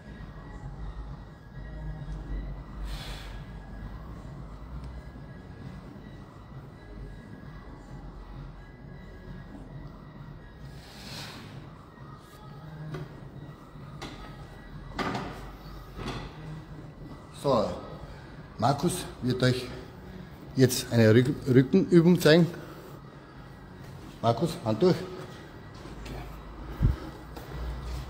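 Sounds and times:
faint background music: 0:00.0 - 0:28.0
low steady hum: 0:00.0 - 0:28.0.

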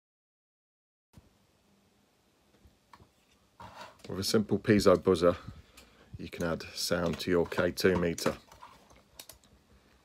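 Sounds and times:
faint clicks of electronic parts: 0:02.5 - 0:10.0.

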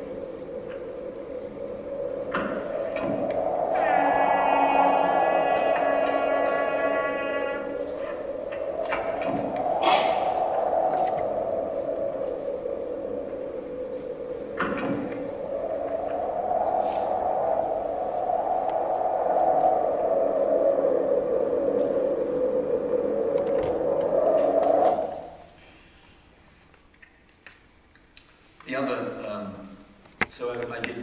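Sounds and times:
droning hum: 0:00.0 - 0:25.4.

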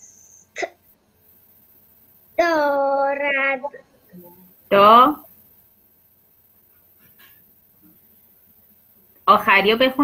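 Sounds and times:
quiet line noise: 0:00.0 - 0:10.0.

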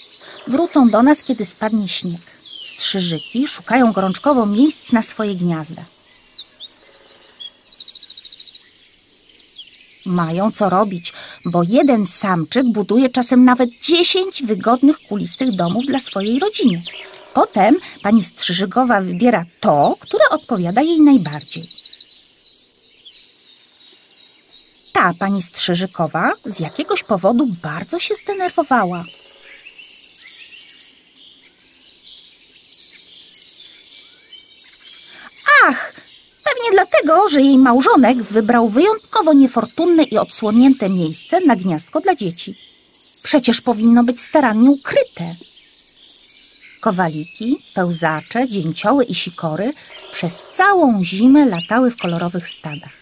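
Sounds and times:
wren singing: 0:00.0 - 0:53.0.

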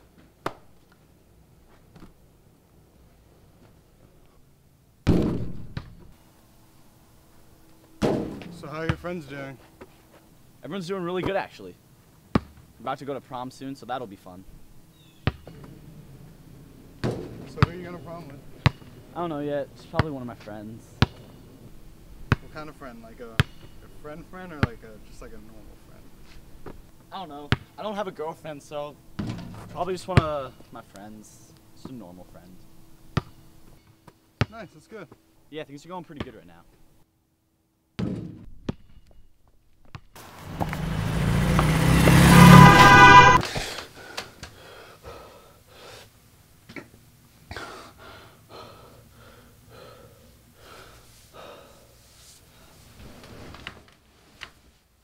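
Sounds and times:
basketball bouncing on pavement: 0:05.1 - 0:06.0, 0:12.3 - 0:12.7, 0:15.2 - 0:15.8, 0:17.0 - 0:19.0, 0:19.9 - 0:20.4, 0:21.0 - 0:21.4, 0:22.2 - 0:22.6, 0:23.3 - 0:24.8, 0:27.5 - 0:27.8, 0:29.2 - 0:30.4, 0:33.1 - 0:33.4, 0:38.0 - 0:39.1, 0:39.8 - 0:40.8
thud: 0:05.1 - 0:06.1, 0:08.0 - 0:08.6, 0:29.2 - 0:29.8, 0:38.0 - 0:38.9
car approaching fast: 0:40.2 - 0:43.4
shrill tyre squeal: 0:40.5 - 0:43.5.

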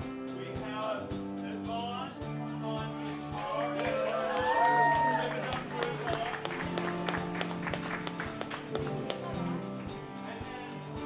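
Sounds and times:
drums keeping steady beat: 0:00.0 - 0:11.0
electric guitars holding chords: 0:02.2 - 0:11.0.

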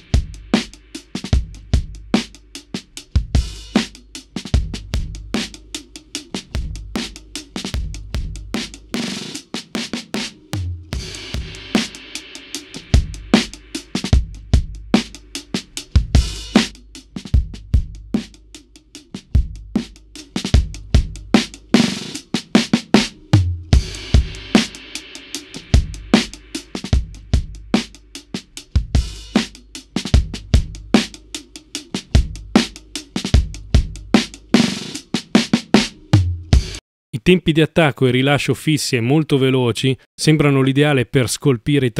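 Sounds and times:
compressed drum loop: 0:00.0 - 0:18.7, 0:19.3 - 0:36.8.

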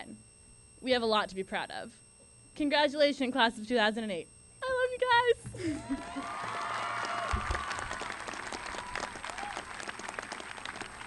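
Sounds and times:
crowd applauding: 0:05.8 - 0:11.0.

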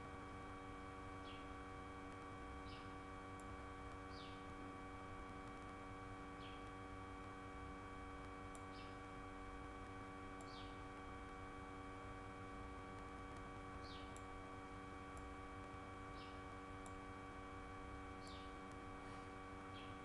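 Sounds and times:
electrical hum: 0:00.0 - 0:20.0.

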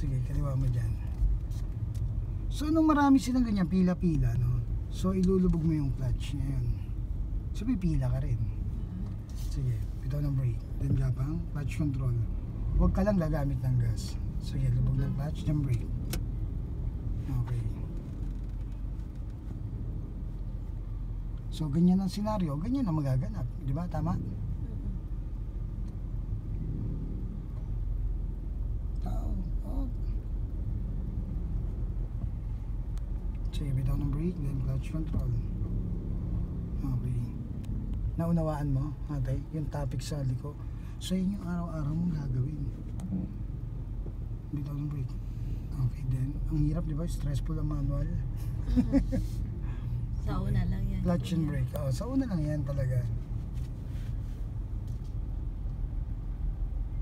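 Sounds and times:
car engine rumble from inside: 0:00.0 - 0:57.0.

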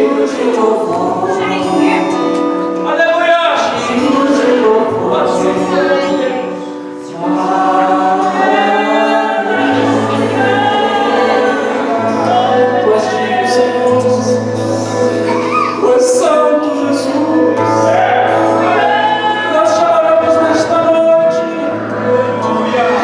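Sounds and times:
women singing gospel song: 0:00.0 - 0:02.0, 0:03.6 - 0:14.5
instrumental accompaniment: 0:00.0 - 0:23.0.

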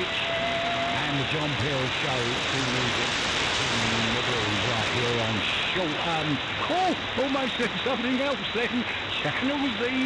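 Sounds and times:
radio static hiss: 0:00.0 - 0:10.0
man speaking over radio: 0:01.0 - 0:03.1, 0:03.7 - 0:10.0.

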